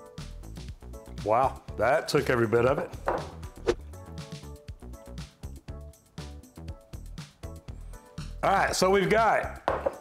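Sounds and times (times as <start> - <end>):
background music with percussive knocks: 2.7 - 5.4, 8.2 - 10.0.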